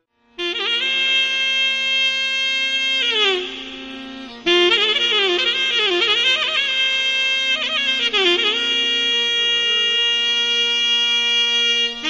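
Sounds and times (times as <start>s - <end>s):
reed wind instrument long note: 0.0s - 12.0s.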